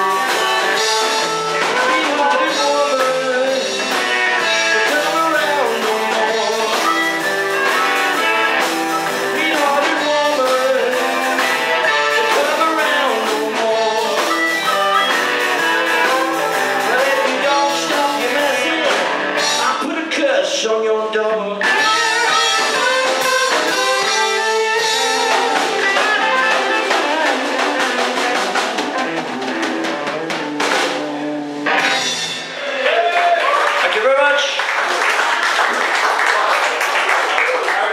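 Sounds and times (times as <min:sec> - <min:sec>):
harmonica: 0:00.0 - 0:19.5, 0:21.6 - 0:30.6
live blues band playing: 0:00.0 - 0:33.1
applause and cheering: 0:32.6 - 0:37.9.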